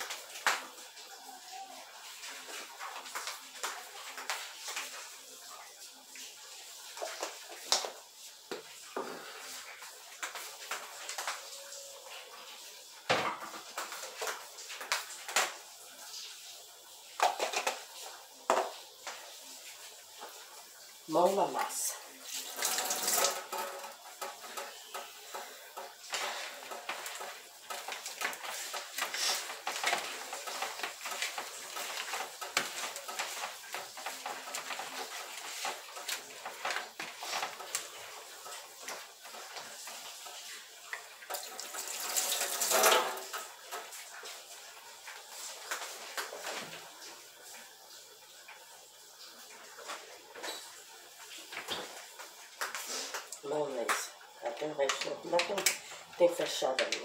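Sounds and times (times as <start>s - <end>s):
tap water splashing in sink: 0.0s - 1.1s, 2.1s - 5.1s, 6.1s - 12.0s, 13.0s - 57.0s
knocks and clatter in plastic bowl: 22.6s - 37.5s.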